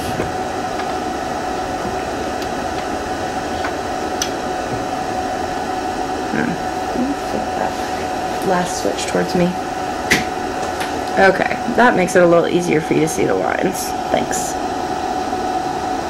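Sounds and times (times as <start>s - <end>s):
machine hum and hiss: 0.0s - 16.0s.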